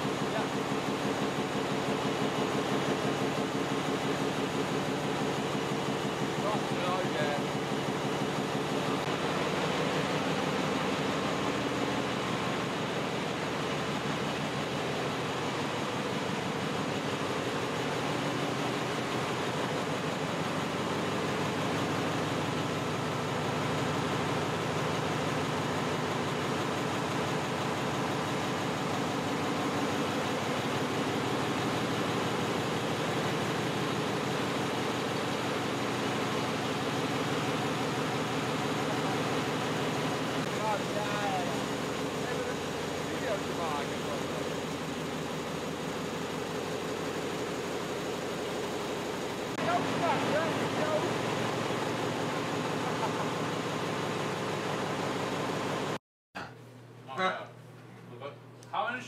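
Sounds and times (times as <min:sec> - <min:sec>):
diesel generator engine droning: 0:00.0 - 0:56.0
ventilation hum: 0:00.0 - 0:59.0.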